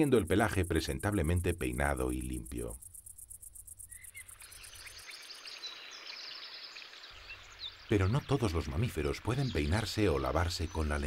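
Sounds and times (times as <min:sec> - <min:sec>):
soft steady hiss: 0:00.0 - 0:11.0
high bird chirps: 0:02.2 - 0:11.0.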